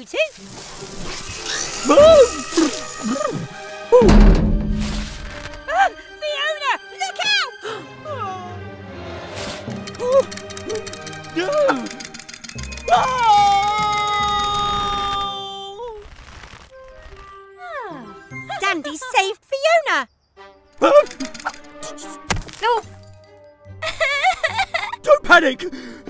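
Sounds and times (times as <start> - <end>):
cartoon background music: 0.9 - 15.8, 16.8 - 19.8, 20.4 - 26.0.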